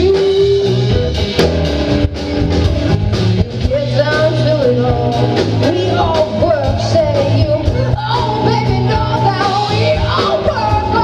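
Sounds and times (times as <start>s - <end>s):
bass guitar: 0.0s - 11.0s
drums: 0.0s - 11.0s
electric guitars: 0.0s - 11.0s
woman singing: 3.3s - 11.0s.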